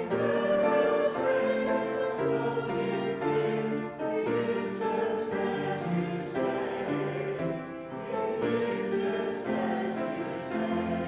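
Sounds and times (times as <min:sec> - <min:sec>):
choir singing a hymn: 0:00.0 - 0:11.0
piano accompaniment: 0:00.0 - 0:11.0.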